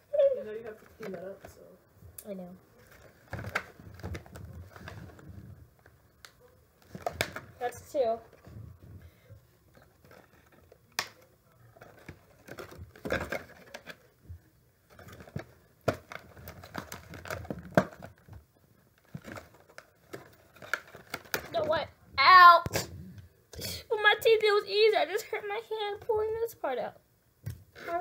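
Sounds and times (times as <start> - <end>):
plastic packaging rustling: 2.7 - 21.9.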